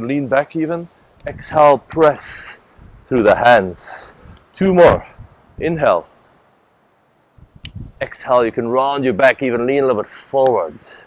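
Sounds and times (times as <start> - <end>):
man speaking: 0.0 - 6.1, 8.0 - 11.0.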